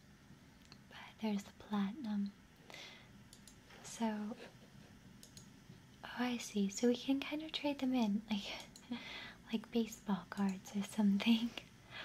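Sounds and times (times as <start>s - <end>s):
faint computer mouse clicks: 3.3s - 3.6s, 5.2s - 5.5s, 8.5s - 8.9s, 10.4s - 10.6s.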